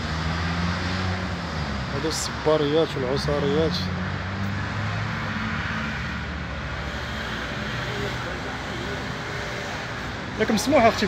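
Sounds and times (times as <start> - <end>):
outdoor traffic noise: 0.0 - 11.0
vehicle engine hum: 0.0 - 11.0.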